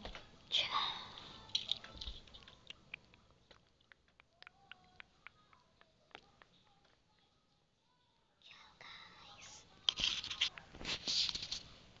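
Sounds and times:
person whispering: 0.5 - 1.5, 8.4 - 9.8.

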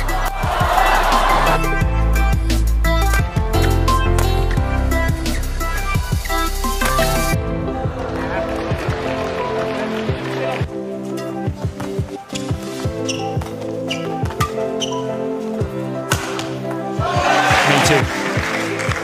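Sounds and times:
crowd roar: 0.0 - 1.8
background music: 0.0 - 19.0
rackets striking shuttlecock: 16.1 - 16.7.

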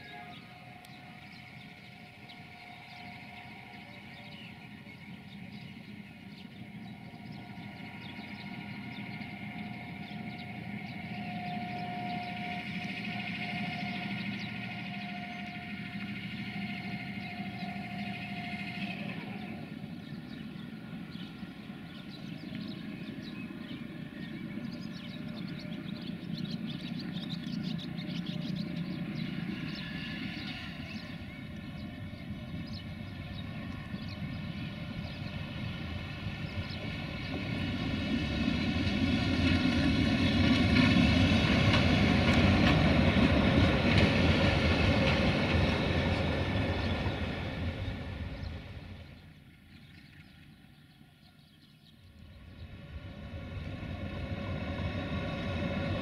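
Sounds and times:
diesel locomotive engines humming: 0.0 - 56.0
diesel locomotive passing close: 0.0 - 56.0
thin steady whine: 0.0 - 56.0.

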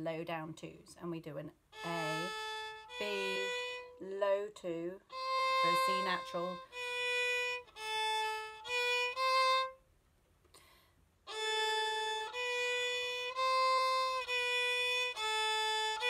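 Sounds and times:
solo violin bowed notes: 1.8 - 4.1, 5.1 - 9.8, 11.3 - 16.0.

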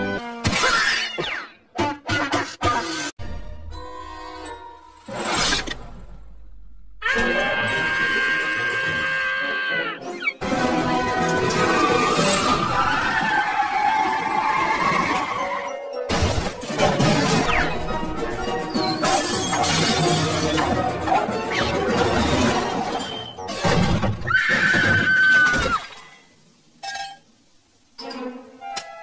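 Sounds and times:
busy cartoon music: 7.0 - 24.2
crash and shatter effects: 16.1 - 18.0.

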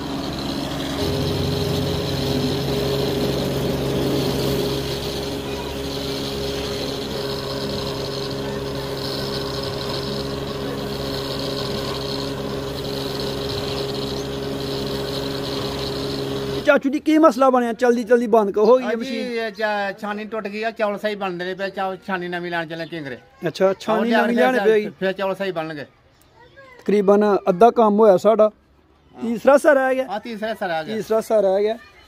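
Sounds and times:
rice hulling machine humming: 0.0 - 16.7.

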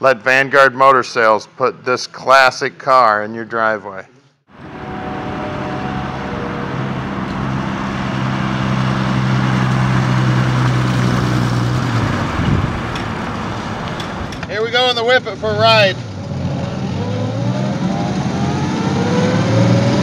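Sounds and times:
car engine driving past: 4.5 - 14.6
road noise: 4.5 - 20.0.

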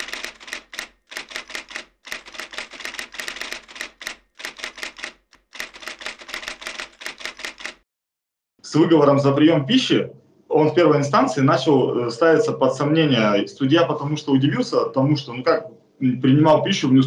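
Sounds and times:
typewriter key clicks: 0.0 - 7.8.

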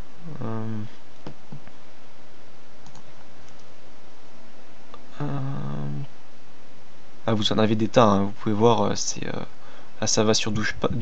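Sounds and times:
background hiss: 0.0 - 11.0
man's hesitation sound: 0.2 - 1.0, 5.0 - 6.1.

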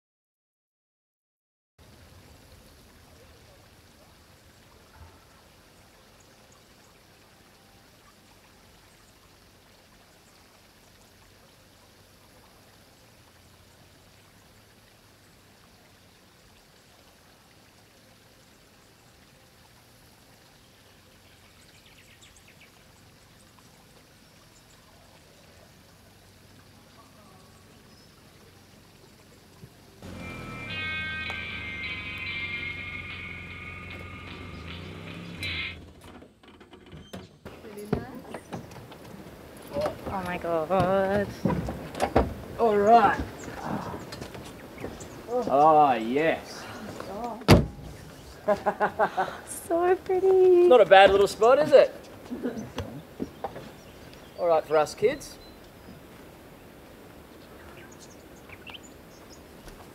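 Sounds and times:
gentle water sounds: 1.8 - 35.3, 37.4 - 59.9
music with high tones: 30.0 - 35.8.

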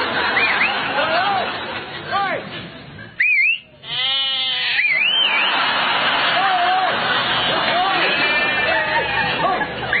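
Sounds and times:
rising and falling whistle: 3.2 - 3.7, 4.8 - 5.6
sheep bleating: 3.8 - 5.0, 7.5 - 9.2
man shouting: 6.4 - 7.0.

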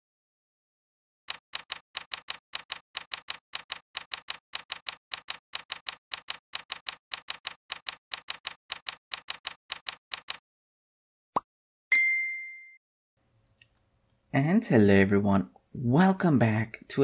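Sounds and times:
keyboard key clicks typing: 1.3 - 10.4.

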